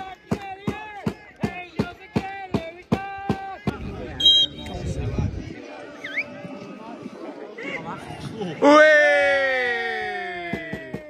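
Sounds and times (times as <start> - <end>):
low rumble on microphone: 3.8 - 5.6.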